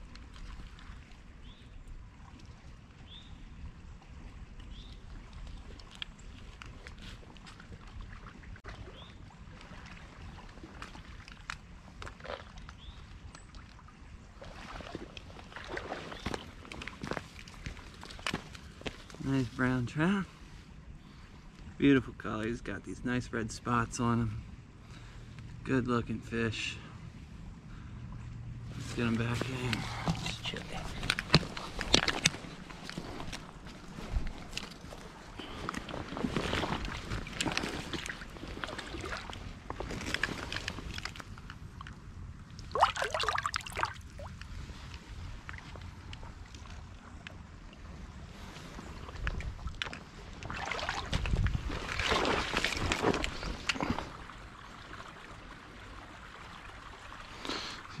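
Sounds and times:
hands splashing in water: 42.6s - 44.3s, 49.8s - 54.0s.

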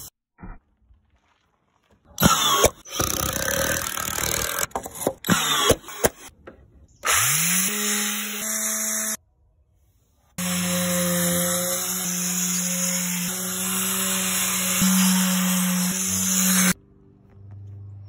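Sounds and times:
electric sander whining: 10.4s - 16.8s.

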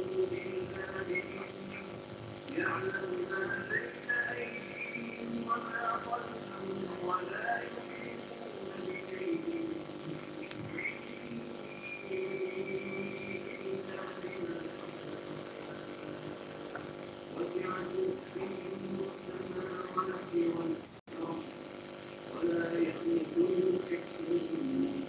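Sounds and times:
high-pitched electrical whine: 0.0s - 25.0s.

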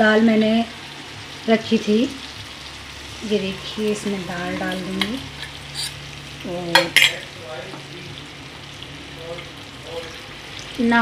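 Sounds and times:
masala sizzling in a pan: 0.0s - 11.0s.

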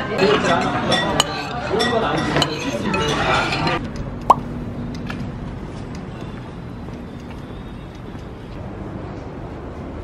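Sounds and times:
murmur of diners' voices: 0.0s - 4.4s
metal spoon clinking on dishes: 0.2s - 3.8s.

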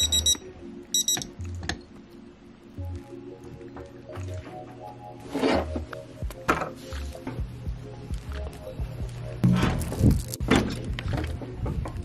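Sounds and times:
digital alarm clock beeping: 0.0s - 1.4s.

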